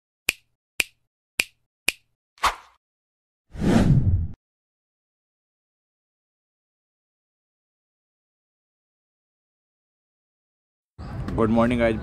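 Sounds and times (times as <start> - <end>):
sharp finger snaps: 0.3 - 2.1.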